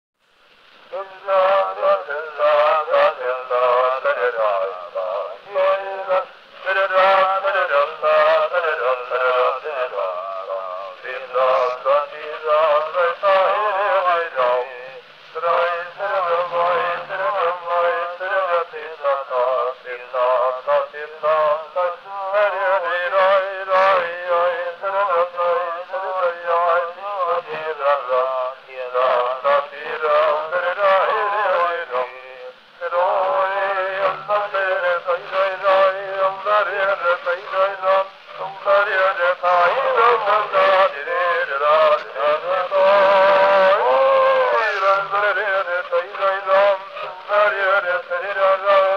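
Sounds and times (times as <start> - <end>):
surface hiss and crackles: 0.3 - 21.5, 26.5 - 48.9
man singing: 0.9 - 48.9.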